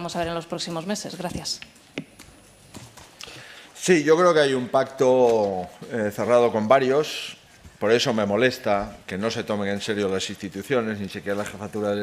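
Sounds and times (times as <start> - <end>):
man speaking: 3.8 - 12.0.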